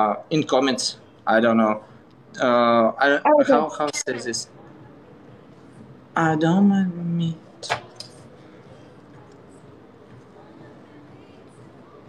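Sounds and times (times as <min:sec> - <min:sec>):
low steady background hiss: 0:00.0 - 0:12.0.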